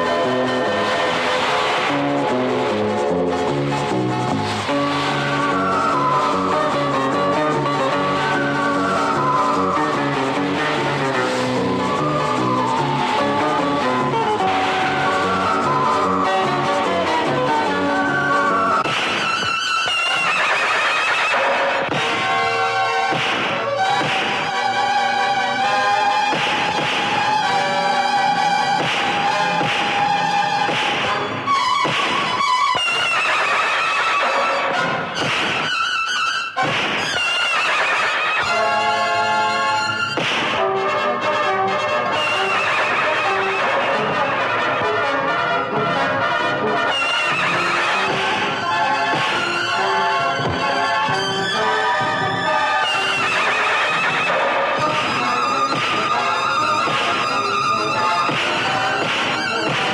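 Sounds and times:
film soundtrack music: 0.0s - 59.9s.

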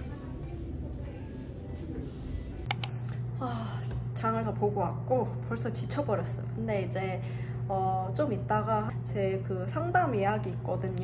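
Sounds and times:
steady low hum: 0.0s - 11.0s
sharp clicks: 2.7s - 3.0s
woman speaking: 3.4s - 11.0s.

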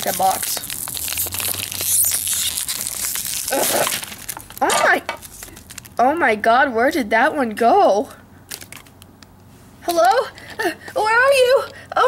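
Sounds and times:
foil bag crinkling and tearing: 0.0s - 6.0s, 8.5s - 9.0s.

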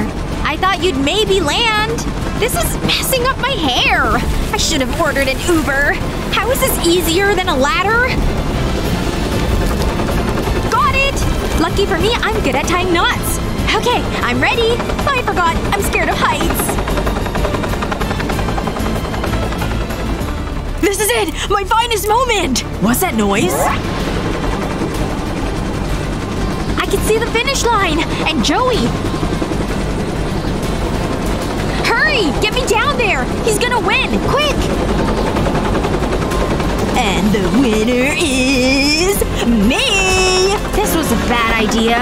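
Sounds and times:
background music: 0.0s - 42.0s
helicopter rotor rumble: 0.0s - 42.0s.

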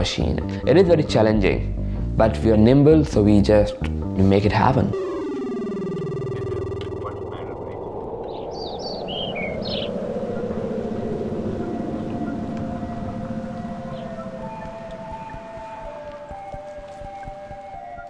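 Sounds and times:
soft sustained music notes: 2.2s - 18.0s.

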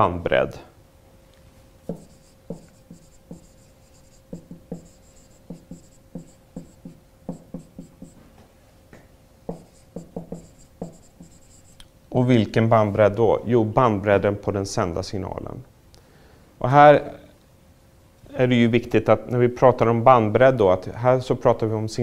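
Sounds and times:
faint high marker squeak: 1.9s - 8.2s, 9.6s - 11.8s
marker writing on whiteboard: 1.9s - 8.2s, 9.5s - 11.8s.

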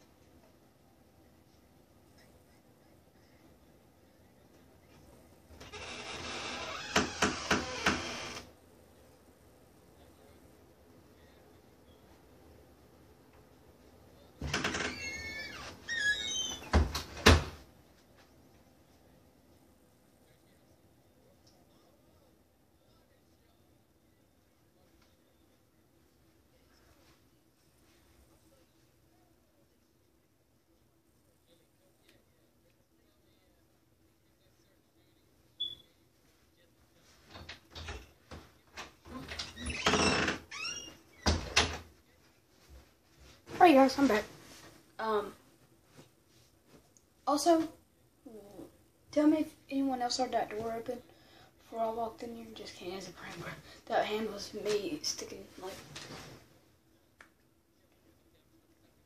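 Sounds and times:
door creaking open: 5.6s - 8.5s, 14.4s - 17.6s, 39.1s - 41.8s.

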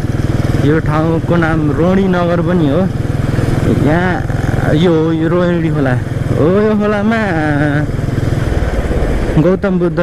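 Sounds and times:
motorcycle engine running: 0.0s - 10.0s
person speaking: 3.6s - 7.9s.

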